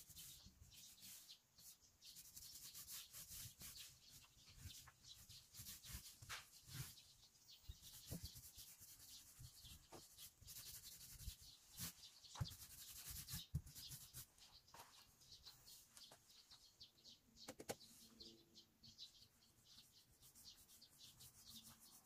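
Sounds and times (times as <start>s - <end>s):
paint roller rubbing on siding: 2.2s - 14.3s.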